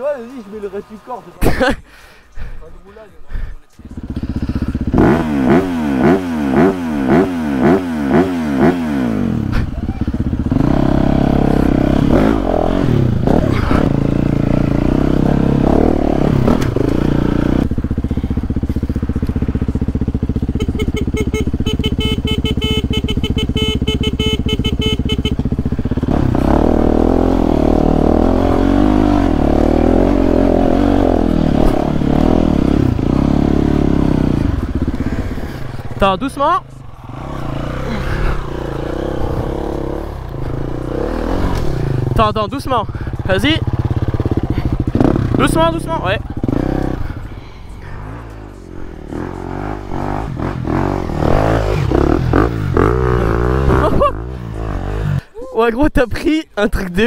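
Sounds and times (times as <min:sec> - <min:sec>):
dirt bike engine revving: 0:03.8 - 0:55.3.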